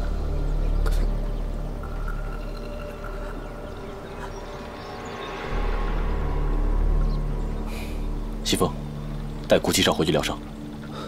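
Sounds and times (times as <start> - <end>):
low rumbling drone: 0.0 - 9.6.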